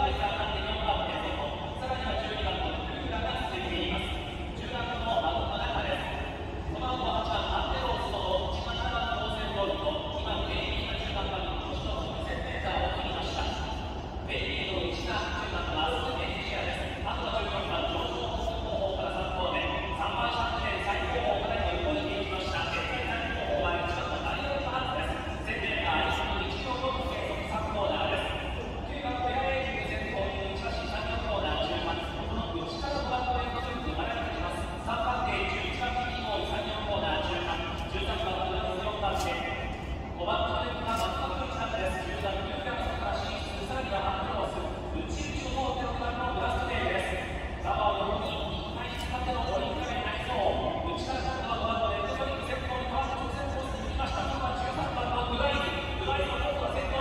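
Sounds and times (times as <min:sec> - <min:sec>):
race commentary over loudspeakers: 0:00.0 - 0:57.0.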